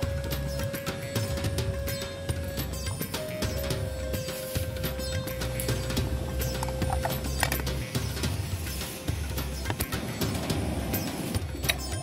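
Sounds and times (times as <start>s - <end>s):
clip-clop percussion: 0.0s - 12.0s.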